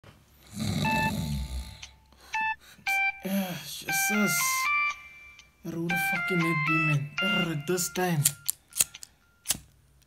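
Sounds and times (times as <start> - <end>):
person snoring: 0.4 - 2.0
electronic phone ring beep: 0.8 - 1.7, 2.4 - 3.3, 3.9 - 9.5.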